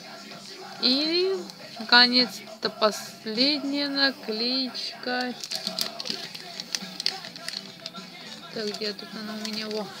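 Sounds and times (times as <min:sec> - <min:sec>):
faint background music: 0:00.0 - 0:10.0
paper sticker crinkling: 0:05.1 - 0:10.0.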